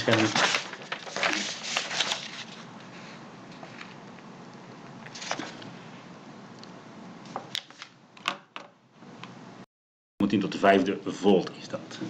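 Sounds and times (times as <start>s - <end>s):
low room hiss: 10.2s - 12.0s.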